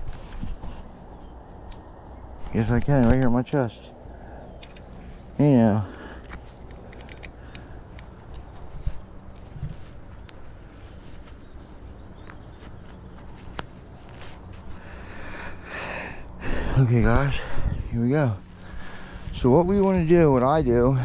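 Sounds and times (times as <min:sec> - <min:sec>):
handling rustle: 0:00.0 - 0:03.4, 0:06.1 - 0:14.9
low outdoor rumble: 0:00.0 - 0:21.0
light clicks and knocks: 0:06.2 - 0:10.4.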